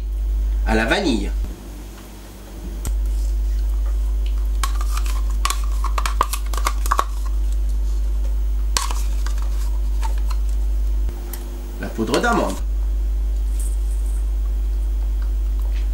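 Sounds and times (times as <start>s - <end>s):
steady low hum: 0.0s - 15.9s
spoon scraping and clinking: 4.6s - 7.4s, 8.8s - 10.5s.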